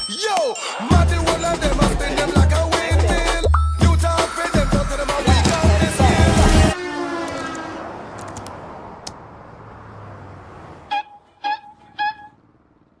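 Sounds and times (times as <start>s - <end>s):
music: 0.0s - 6.8s
road traffic noise: 0.9s - 13.0s.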